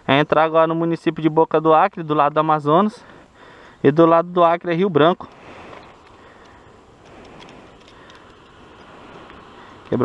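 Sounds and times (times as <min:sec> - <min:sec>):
outdoor background hiss: 0:00.0 - 0:10.0
plastic sunglasses clicking: 0:05.3 - 0:10.0.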